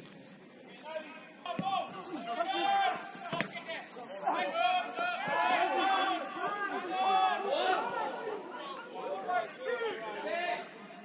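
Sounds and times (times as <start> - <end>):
players shouting: 1.4 - 10.8.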